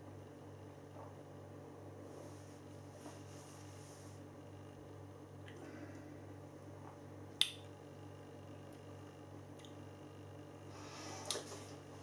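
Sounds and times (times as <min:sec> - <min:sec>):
steady low hum: 0:00.0 - 0:12.0
soft breath: 0:10.6 - 0:11.8.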